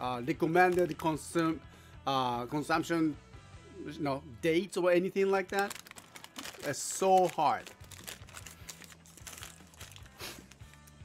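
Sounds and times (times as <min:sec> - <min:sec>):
quiet background music: 0:00.0 - 0:11.0
bag crinkling: 0:05.4 - 0:10.9
biscuits crunching: 0:05.6 - 0:11.0.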